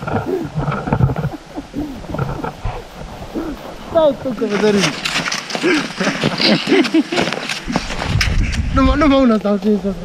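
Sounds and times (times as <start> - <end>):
hikers' voices: 0.0 - 10.0
boots crunching in snow: 3.8 - 8.3.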